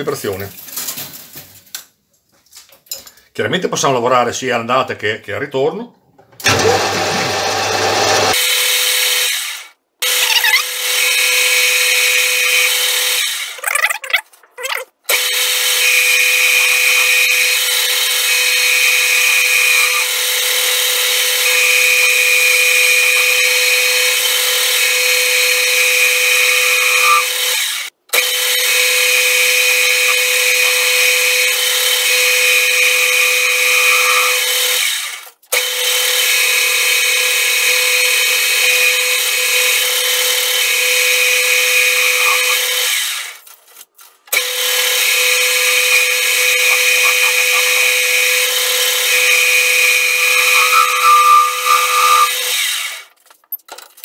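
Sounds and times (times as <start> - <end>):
metal lathe whining and cutting: 6.4 - 10.2, 15.1 - 43.3, 44.3 - 53.0.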